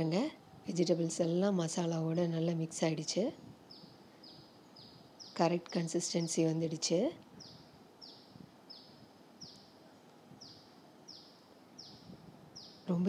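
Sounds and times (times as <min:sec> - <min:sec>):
low background hiss: 0:00.0 - 0:13.0.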